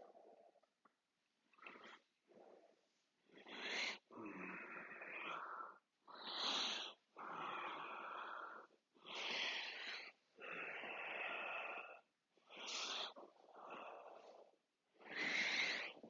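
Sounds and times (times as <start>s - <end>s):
slow human breathing: 1.6s - 16.0s.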